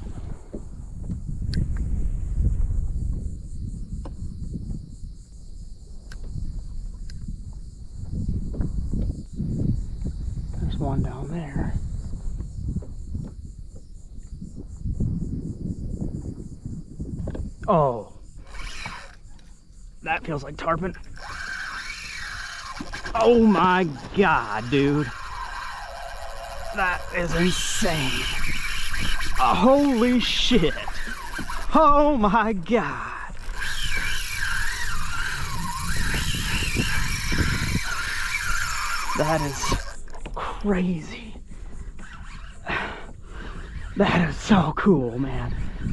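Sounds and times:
fishing reel drag whine: 0.0s - 45.9s
insects chorus pulsing: 0.0s - 45.9s
low buffeting noise: 0.0s - 45.9s
wind rumble: 0.0s - 45.9s
rippling water around a kayak: 21.0s - 32.3s.

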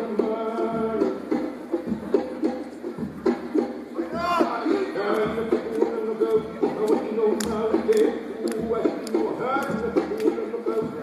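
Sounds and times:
percussion strikes: 0.0s - 11.0s.

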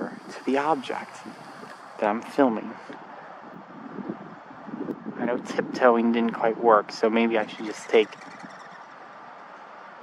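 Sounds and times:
faint outdoor hiss: 0.0s - 10.0s.

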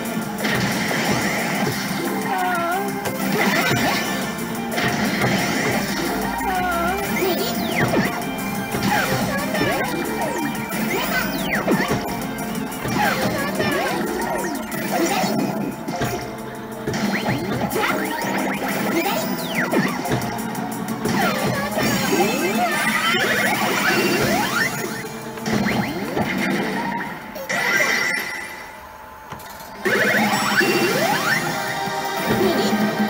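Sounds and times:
sliding effect tones: 0.0s - 31.7s
slot machine game music: 0.0s - 33.0s.

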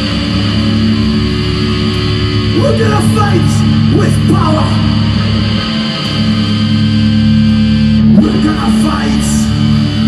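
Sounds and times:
metal band playing: 0.0s - 10.0s.

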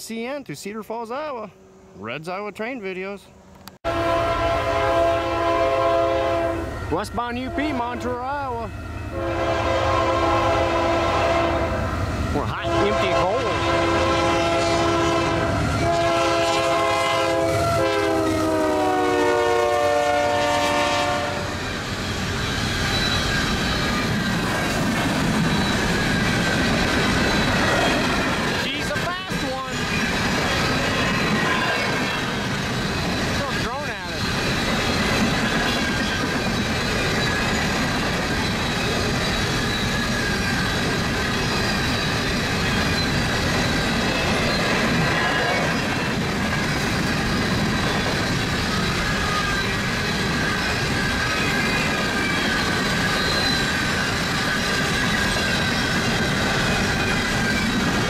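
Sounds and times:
train rumble and wheel clatter: 1.4s - 58.0s
locomotive air horn: 3.8s - 21.6s.

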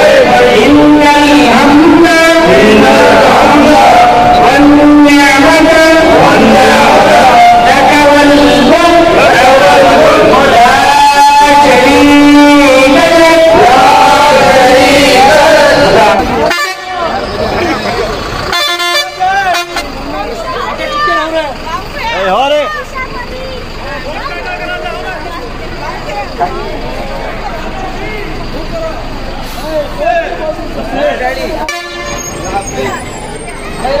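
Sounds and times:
bus engine passing: 0.0s - 34.0s
people talking: 0.0s - 34.0s
people's voices: 0.0s - 34.0s
bus horn blasts: 16.4s - 17.8s, 18.4s - 20.0s, 31.5s - 33.0s.

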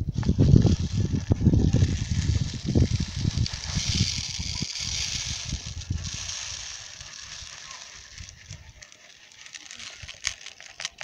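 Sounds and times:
grain pouring into plastic bowl: 0.1s - 11.0s.

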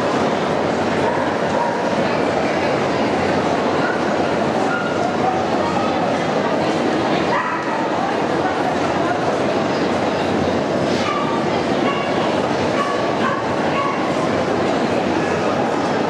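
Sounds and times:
crowd chatter: 0.0s - 16.0s
dogs barking: 11.0s - 14.2s.

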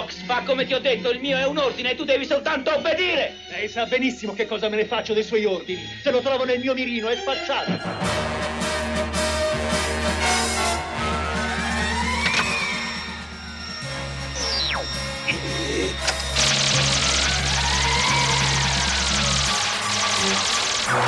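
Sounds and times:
dramatic background music: 7.6s - 21.0s
falling whistle: 10.3s - 15.4s, 16.4s - 21.0s
crackling hiss of laser fire: 18.8s - 21.0s.

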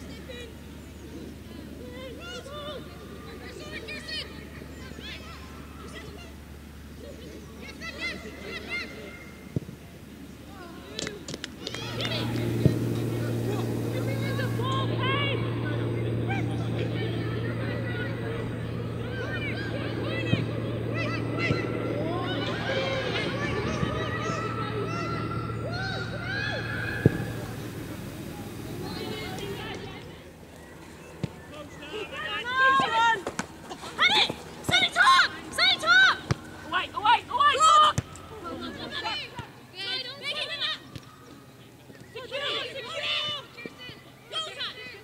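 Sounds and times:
players shouting and calling: 10.5s - 45.0s
bird calling: 25.0s - 29.9s.

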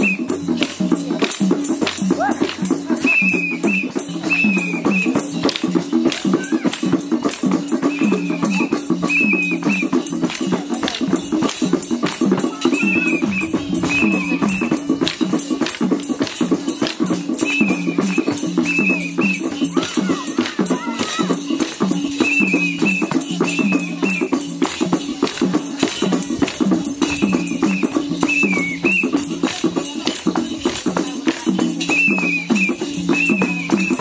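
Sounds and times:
folk dance music: 0.0s - 34.0s
rattle of clicking percussion: 0.0s - 34.0s
high warbling phrases: 12.5s - 15.0s.

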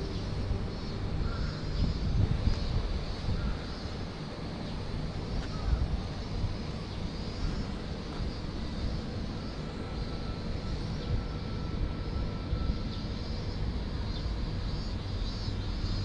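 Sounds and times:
outdoor background rumble: 0.0s - 16.0s.

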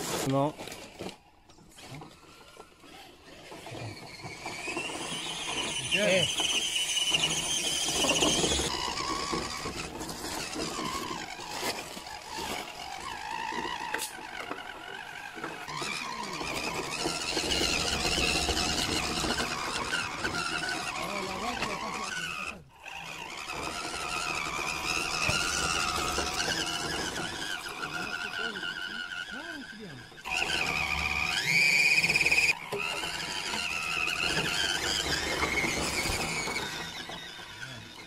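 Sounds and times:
electric motor whine: 0.0s - 38.0s.

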